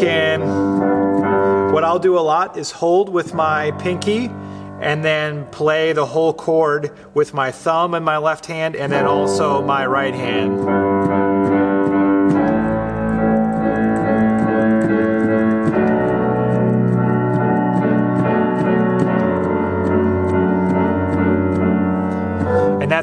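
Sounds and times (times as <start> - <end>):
digital keyboard pulsing chords: 0.0 - 2.5, 8.8 - 23.0.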